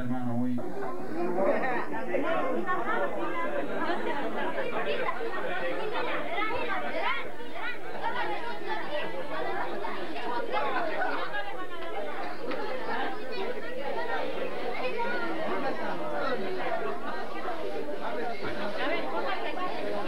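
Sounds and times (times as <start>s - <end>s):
hubbub of overlapping voices: 0.0s - 20.0s.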